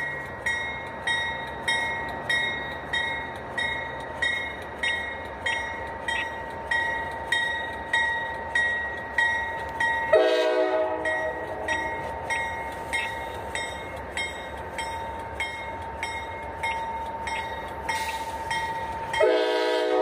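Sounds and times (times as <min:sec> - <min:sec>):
crossing bell ringing: 0:00.0 - 0:20.0
train horn blast: 0:10.1 - 0:11.8, 0:19.2 - 0:20.0.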